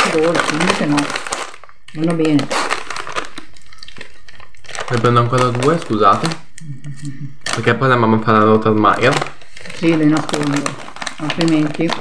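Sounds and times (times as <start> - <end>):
candy packet rustling: 0.0 - 12.0.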